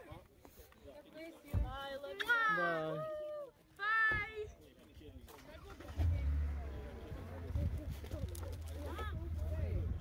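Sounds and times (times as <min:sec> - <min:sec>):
car engine starting and running: 0:05.4 - 0:09.8.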